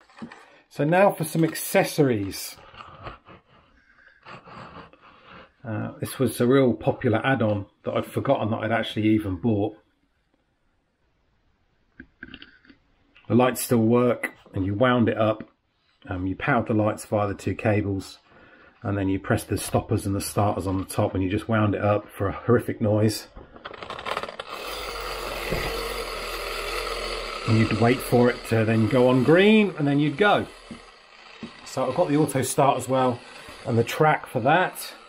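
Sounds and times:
clockwork timer whirring: 0:23.6 - 0:35.0.

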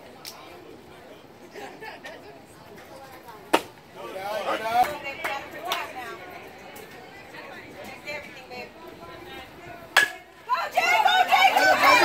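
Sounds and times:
murmur of spectators talking: 0:00.0 - 0:12.0.

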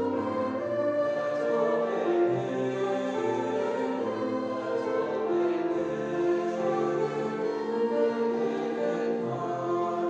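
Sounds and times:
choir singing sustained chords: 0:00.0 - 0:10.0.

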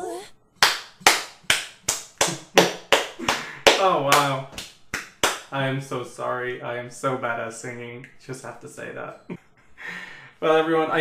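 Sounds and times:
person saying oh: 0:00.0 - 0:00.3
person clapping hands: 0:00.6 - 0:05.5.

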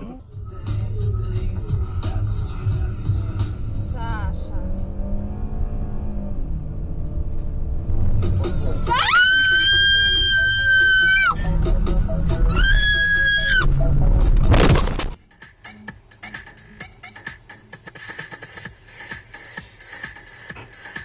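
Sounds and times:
car engine and road noise: 0:00.0 - 0:21.0
person screaming: 0:08.8 - 0:11.4, 0:12.5 - 0:13.7.

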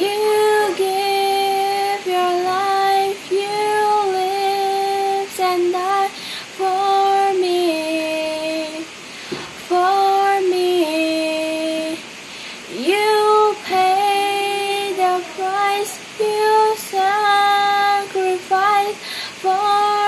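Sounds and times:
girl singing solo: 0:00.0 - 0:20.0.

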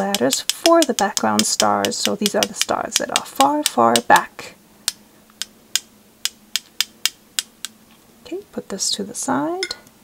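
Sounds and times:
paintbrush tapping on brush handle: 0:00.0 - 0:04.3.

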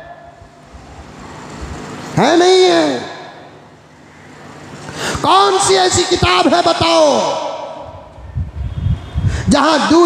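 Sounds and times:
man speaking: 0:02.2 - 0:03.3, 0:05.2 - 0:07.7.

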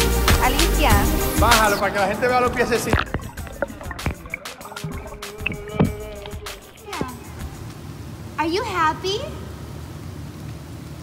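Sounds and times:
underwater water moving: 0:01.5 - 0:07.8
bubbles clicking and popping: 0:02.4 - 0:07.7.

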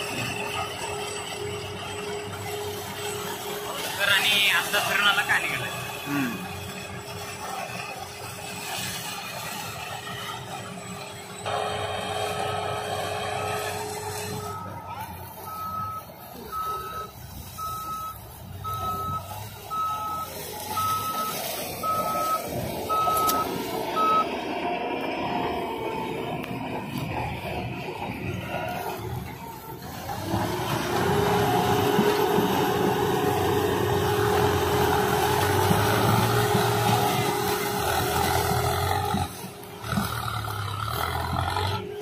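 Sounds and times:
harvester and tractor machine din: 0:00.0 - 0:42.0
vehicle warning beeper: 0:11.5 - 0:24.4.

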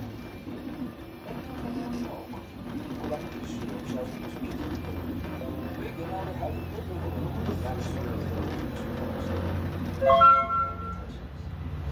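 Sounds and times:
laser engraver humming: 0:00.0 - 0:11.1.

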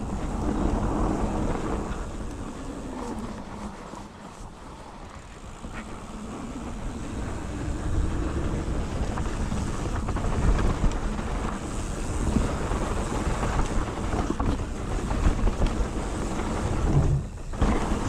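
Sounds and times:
bike rattles and clicks: 0:00.0 - 0:18.0
bike tyres rolling on dirt: 0:00.0 - 0:18.0
wind on microphone: 0:00.0 - 0:18.0.

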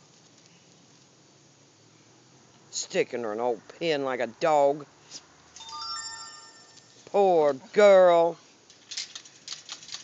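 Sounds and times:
bell-like chime: 0:05.6 - 0:07.0.

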